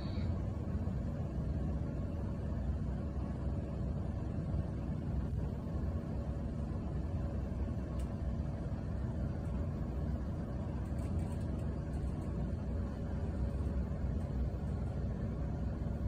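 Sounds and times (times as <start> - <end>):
lift ride rumble: 0.0 - 16.0.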